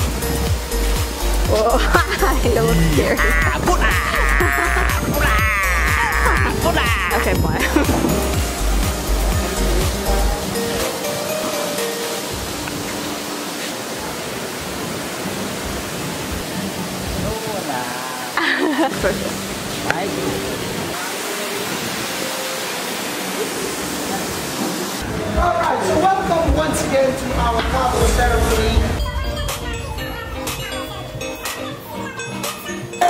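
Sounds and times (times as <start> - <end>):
soft background music: 0.0 - 17.8, 18.8 - 33.0
person speaking: 1.5 - 8.0
steady rushing noise: 18.9 - 31.5.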